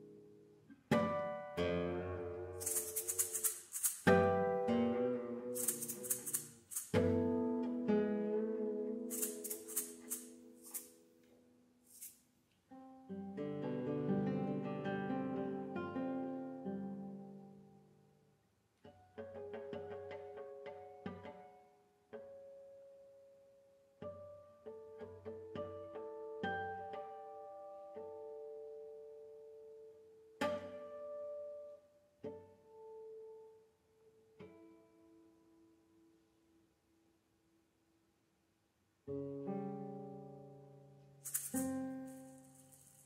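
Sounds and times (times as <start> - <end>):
plucked guitar notes: 0.0 - 2.6, 4.1 - 5.6, 7.0 - 9.1, 12.8 - 17.8, 39.1 - 41.2
classical guitar ringing: 0.0 - 10.7, 39.1 - 42.7
hissing percussion strokes: 2.6 - 4.3, 5.6 - 7.2, 9.1 - 10.9, 41.2 - 43.0.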